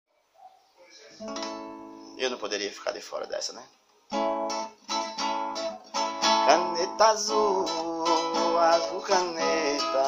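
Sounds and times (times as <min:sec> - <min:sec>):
acoustic guitar chord strummed: 0:01.2 - 0:02.2, 0:04.1 - 0:10.0.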